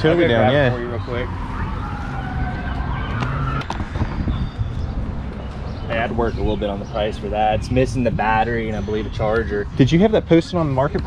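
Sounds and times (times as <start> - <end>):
faint siren wailing: 0.0 - 6.8.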